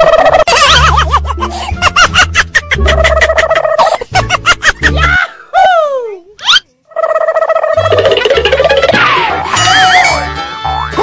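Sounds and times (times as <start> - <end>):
turkey-like gobble: 7.0 - 9.2.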